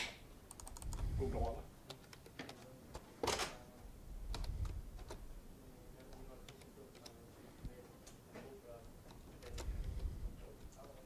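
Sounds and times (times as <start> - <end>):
keyboard keystroke clicks: 0.5 - 1.0.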